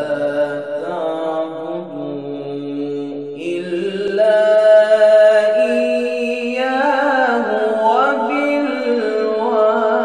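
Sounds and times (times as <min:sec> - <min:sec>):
man chanting melodic recitation: 0:00.0 - 0:10.0.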